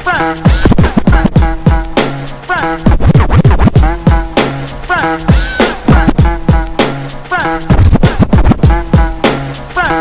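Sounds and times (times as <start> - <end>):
drum beat with kick thumps: 0.0 - 10.0
vinyl record scratching: 0.0 - 10.0.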